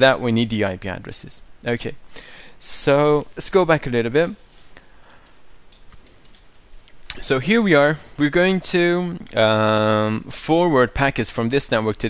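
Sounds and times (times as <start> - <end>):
low hiss: 0.0 - 12.0
computer keyboard clicks: 4.4 - 7.2.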